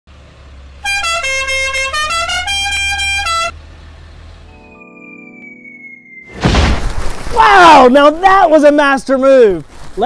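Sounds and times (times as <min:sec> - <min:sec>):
truck engine rumble: 0:00.1 - 0:04.8
musical truck horn tune: 0:00.8 - 0:03.6.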